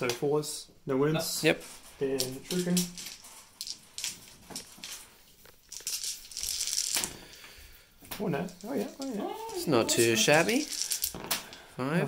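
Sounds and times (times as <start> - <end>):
dice rattled and rolled: 2.0 - 7.4, 8.4 - 11.6
dice clicking together: 2.1 - 7.3, 8.5 - 11.6.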